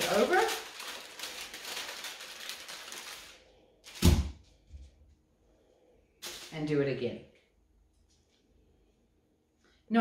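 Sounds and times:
wax paper crinkling: 0.0 - 4.0, 6.2 - 6.9.

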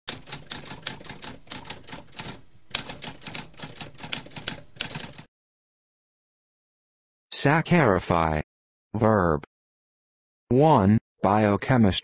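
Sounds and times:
typewriter keystrokes clacking: 0.1 - 5.3.

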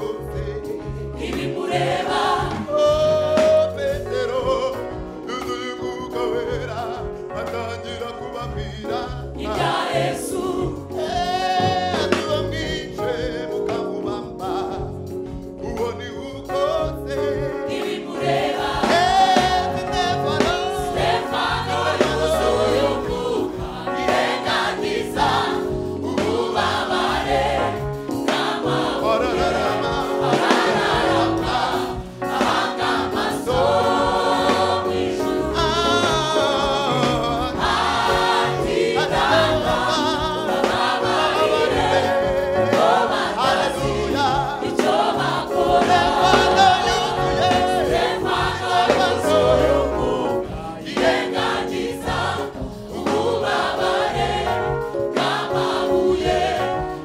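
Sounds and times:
choir singing gospel song: 0.0 - 57.0.

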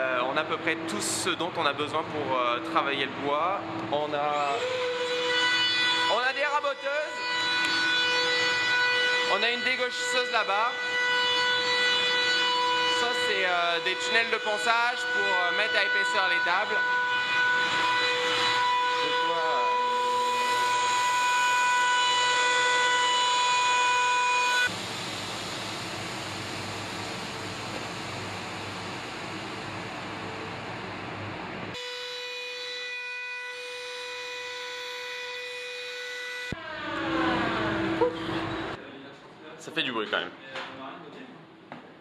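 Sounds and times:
machine high mechanical whine: 0.0 - 38.8.

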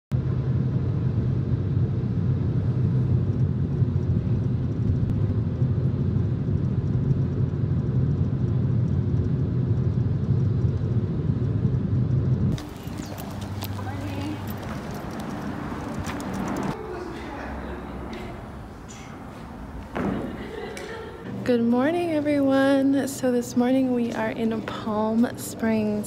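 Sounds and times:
car driving drone from inside: 2.2 - 16.9.

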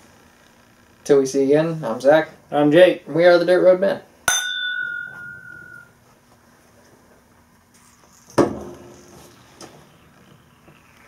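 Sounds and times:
glasses clinking: 4.3 - 5.9.

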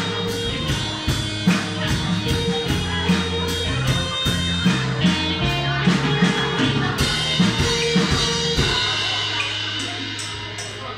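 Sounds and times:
band music: 0.0 - 10.9
drum hits: 0.0 - 10.9.

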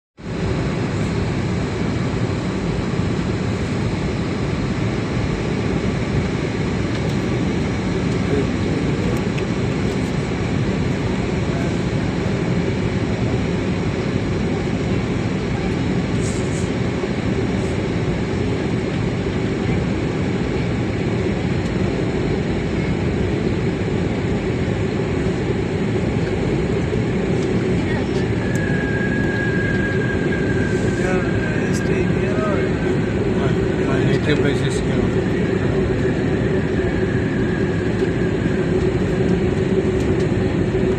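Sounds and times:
aircraft engine drone: 0.2 - 40.9.

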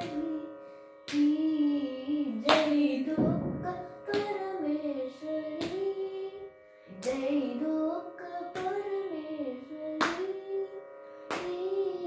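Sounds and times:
boy singing: 0.0 - 0.5, 1.1 - 10.8, 11.4 - 12.0
sharp hand slaps: 2.5 - 4.5, 10.0 - 10.2, 11.3 - 11.6.

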